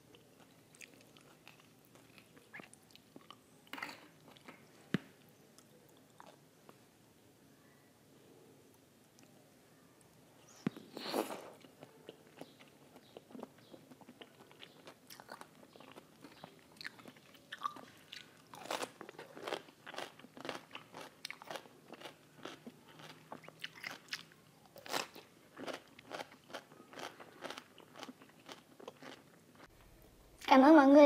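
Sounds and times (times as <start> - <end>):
cucumber being bitten and chewed: 10.6 - 29.2.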